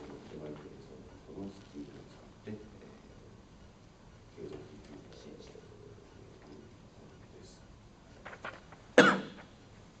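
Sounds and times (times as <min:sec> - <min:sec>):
loud cough: 0:09.0 - 0:09.4.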